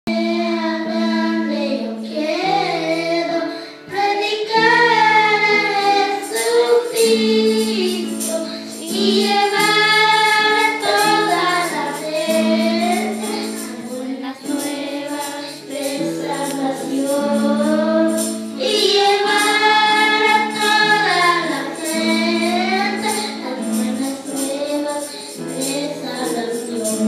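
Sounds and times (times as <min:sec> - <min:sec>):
children singing together: 0:00.1 - 0:27.0.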